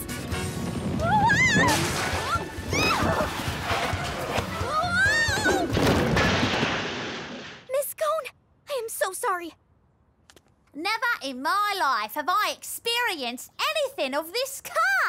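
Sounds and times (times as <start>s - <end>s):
music: 0.0s - 5.7s
rumbling crash and clatter: 0.1s - 7.7s.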